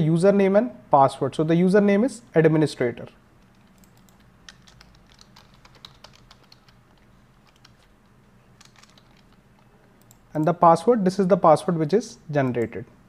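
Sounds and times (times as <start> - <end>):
faint keyboard typing: 3.4 - 10.6.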